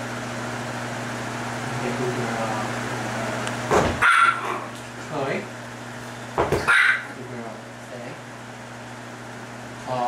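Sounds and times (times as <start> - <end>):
dog barking: 4.0 - 4.7, 6.6 - 7.1.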